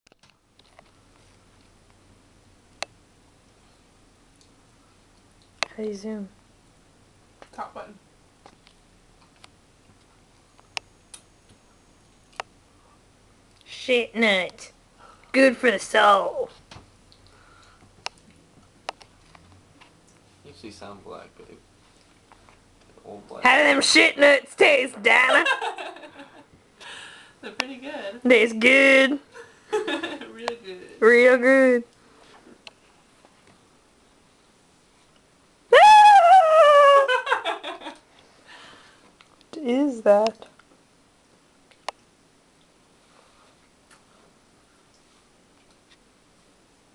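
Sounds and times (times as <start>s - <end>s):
high-pitched wailing cry: 35.7s - 37.4s.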